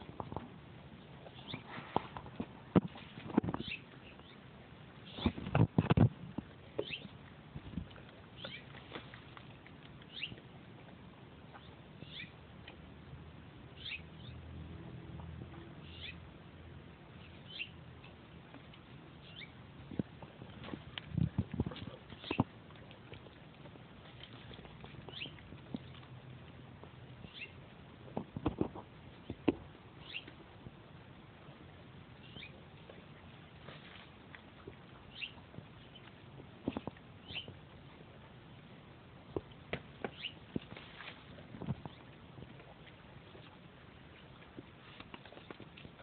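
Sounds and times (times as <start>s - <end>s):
leaves rustling: 40.2s - 46.0s.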